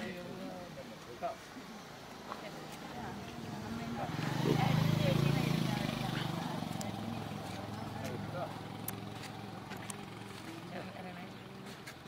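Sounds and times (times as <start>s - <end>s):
faint voices: 0.0s - 12.0s
vehicle engine rumbling: 2.4s - 12.0s.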